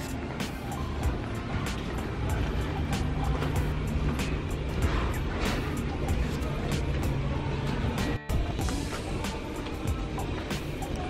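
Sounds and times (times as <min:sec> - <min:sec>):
background music with beat: 0:00.0 - 0:11.0
steady low rumble: 0:00.0 - 0:11.0.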